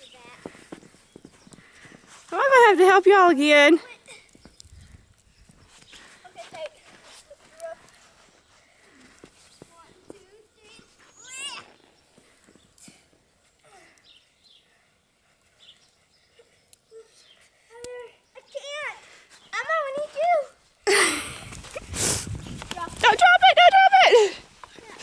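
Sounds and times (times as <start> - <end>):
children's voices calling: 0.0 - 4.7, 5.9 - 12.0, 16.3 - 22.0, 22.6 - 25.0.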